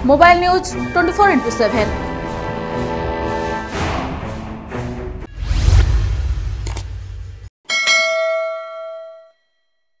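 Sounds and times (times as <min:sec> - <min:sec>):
metallic bell ding: 0:07.7 - 0:09.6.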